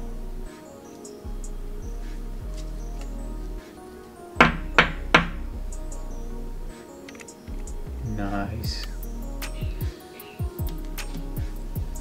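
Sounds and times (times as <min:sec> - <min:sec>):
background music: 0:00.0 - 0:12.0
sharp knocks: 0:04.4 - 0:05.4.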